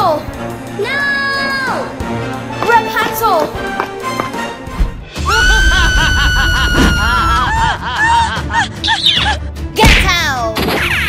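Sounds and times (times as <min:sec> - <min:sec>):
dramatic background music: 0:00.0 - 0:11.0
girl screaming: 0:05.2 - 0:09.0.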